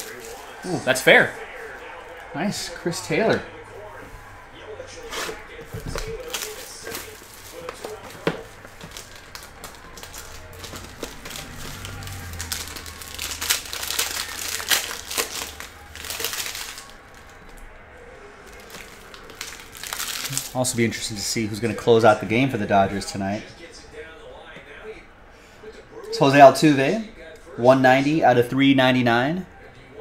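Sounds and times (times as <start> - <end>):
foil pack crinkling: 0.0 - 2.3, 5.1 - 17.6, 18.4 - 21.0
plastic wrap crinkling and tearing: 0.0 - 2.3, 5.0 - 17.6, 18.4 - 21.0.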